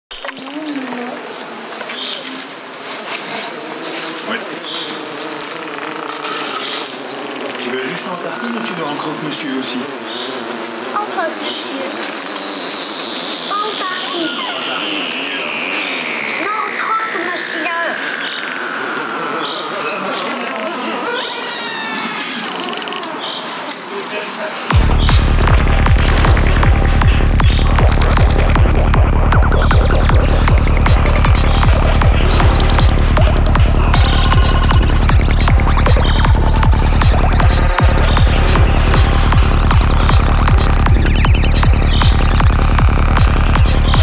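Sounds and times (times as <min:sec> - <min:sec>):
high chirps: 0:08.2 - 0:20.3, 0:24.7 - 0:44.0
wavering low tones: 0:08.4 - 0:21.1, 0:24.7 - 0:44.0
dark electronic sound design: 0:24.7 - 0:44.0
dense warbling bed: 0:24.7 - 0:44.0.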